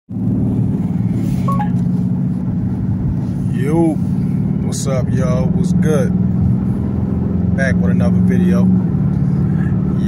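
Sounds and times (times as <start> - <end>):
car engine and road noise: 0.1 - 10.0
two-note tone: 1.4 - 1.9.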